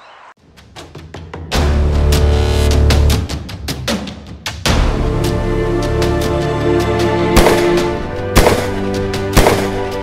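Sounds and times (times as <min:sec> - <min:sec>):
intro music with held notes: 0:04.7 - 0:10.0.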